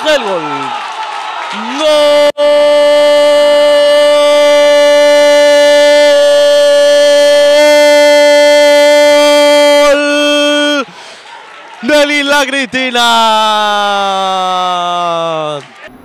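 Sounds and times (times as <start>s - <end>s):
commentator shouting: 0.0s - 0.8s, 1.5s - 10.9s, 11.8s - 15.6s.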